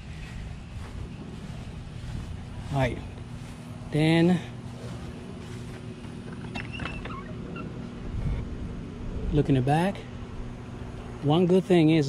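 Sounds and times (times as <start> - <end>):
low hum: 0.0 - 12.0
gate squeaking: 6.3 - 7.8.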